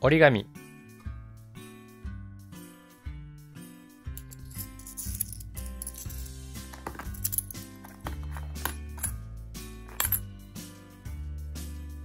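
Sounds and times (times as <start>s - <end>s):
coins clinking into box: 4.2s - 9.2s, 9.9s - 10.3s.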